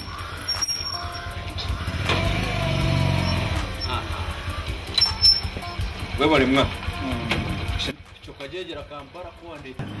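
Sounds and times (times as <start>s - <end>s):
small motorcycle passing by: 1.7s - 4.5s.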